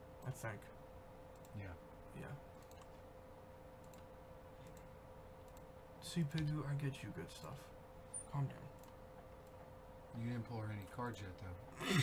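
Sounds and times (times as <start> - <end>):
faint steady hum: 0.0 - 12.0
computer clicks: 1.3 - 1.6, 2.5 - 2.9, 3.8 - 5.7, 8.1 - 9.6.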